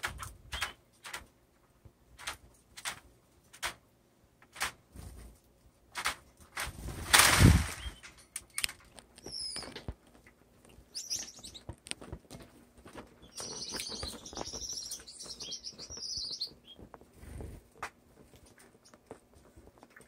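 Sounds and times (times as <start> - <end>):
bird wings fluttering: 6.6 - 8.0
bird twittering warble: 9.3 - 9.8, 10.9 - 11.7, 13.2 - 16.8.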